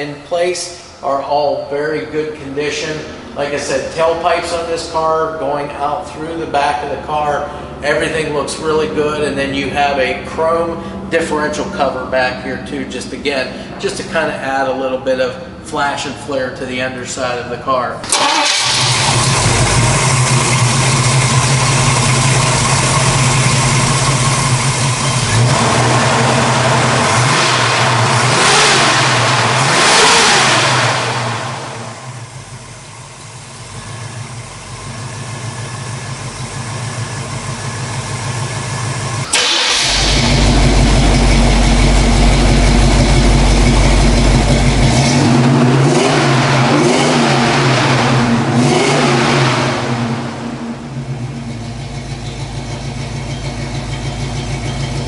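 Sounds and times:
car engine revving and idling: 0.0 - 55.0.

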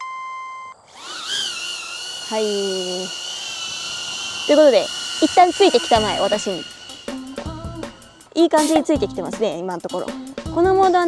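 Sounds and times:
drone propellers whining: 0.8 - 8.4.

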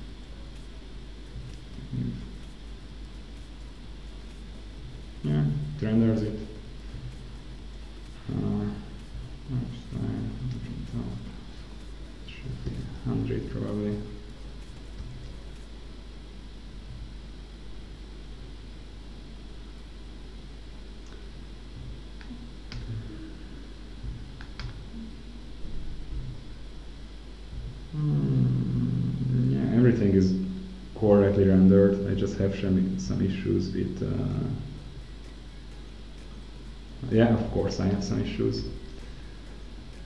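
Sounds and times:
faint electrical hum: 0.0 - 40.0
man talking: 1.8 - 2.3, 5.2 - 6.6, 8.2 - 11.4, 12.3 - 14.2, 28.0 - 34.8, 37.0 - 38.9
man humming: 27.9 - 29.5.

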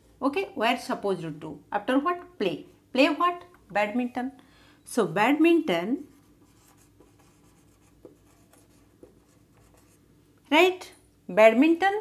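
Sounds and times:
marker pen scratching on whiteboard: 6.1 - 10.0.

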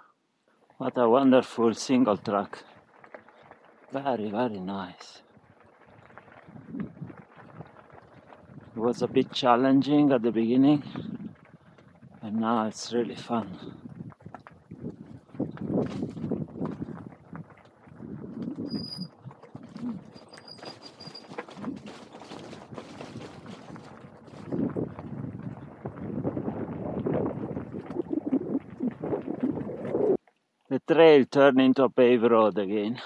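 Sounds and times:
bicycle tyres crunching on gravel: 1.0 - 30.1
bike knocks and rattles: 20.5 - 25.3.

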